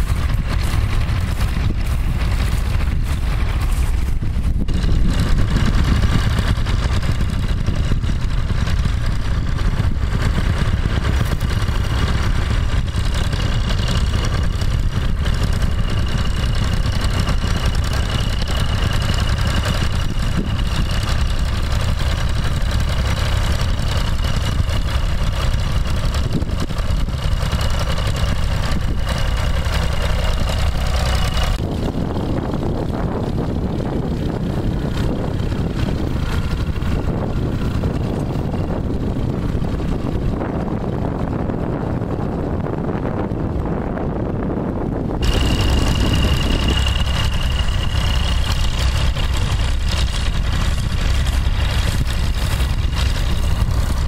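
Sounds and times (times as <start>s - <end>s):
tractor engine running: 0.0s - 54.0s
wind rumble on microphone: 0.0s - 54.0s.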